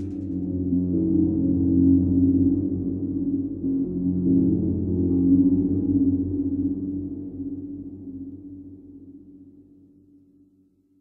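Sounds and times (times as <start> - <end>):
dark electronic synth drone: 0.0 - 9.3.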